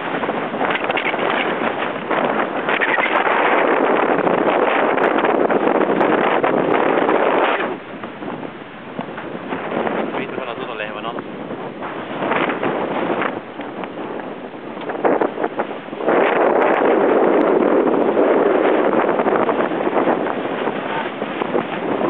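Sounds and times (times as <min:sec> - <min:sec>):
strong wind buffeting microphone: 0:00.0 - 0:22.0.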